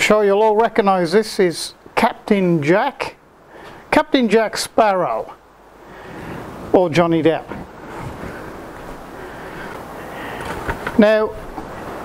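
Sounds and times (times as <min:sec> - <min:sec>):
gale-force wind blowing: 0:00.0 - 0:12.0.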